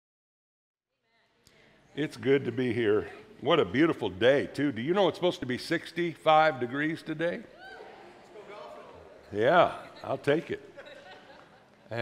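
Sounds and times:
man's voice: 1.9 - 7.5, 8.4 - 10.8.

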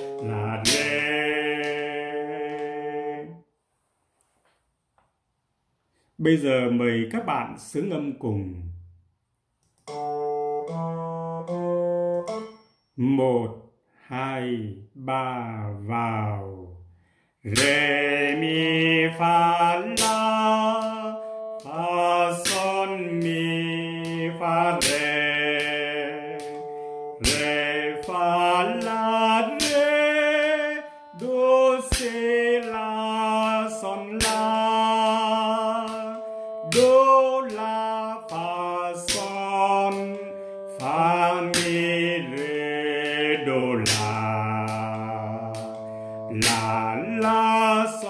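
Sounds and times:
man singing solfege: 0.0 - 3.4, 9.9 - 16.8, 17.4 - 48.0.

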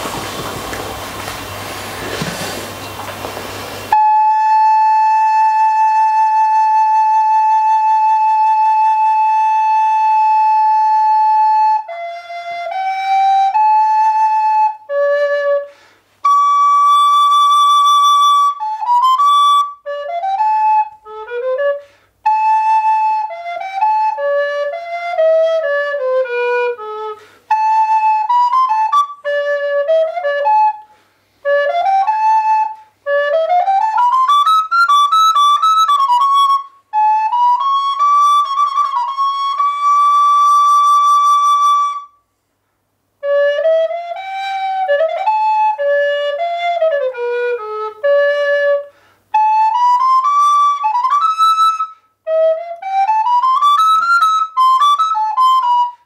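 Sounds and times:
flute melody: 0.0 - 3.2, 3.8 - 42.3, 43.2 - 56.0
rushing noise: 0.0 - 4.0.

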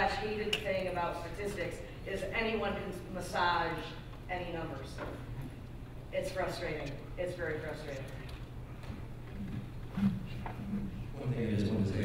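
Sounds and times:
sound system hum: 0.0 - 12.0.

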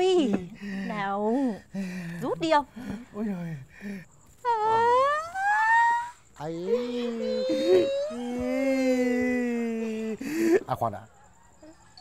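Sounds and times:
person crying out rising pitch: 4.7 - 10.2.

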